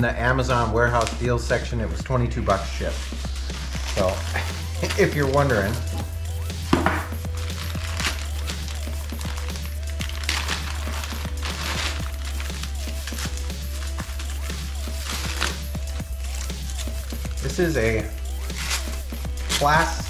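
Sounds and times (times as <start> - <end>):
background music with bass line: 0.0 - 20.0
bubble wrap crinkling: 2.5 - 20.0
plastic bag rustling: 2.5 - 20.0.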